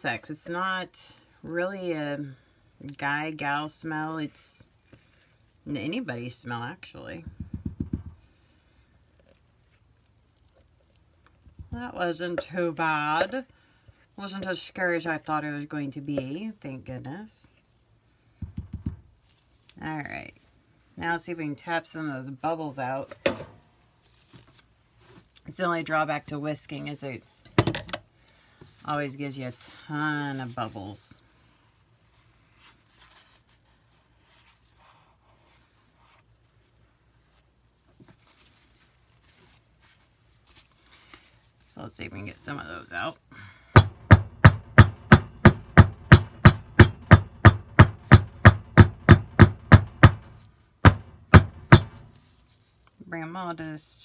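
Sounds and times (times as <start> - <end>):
wooden mold knocking on countertop: 7.2 - 8.2.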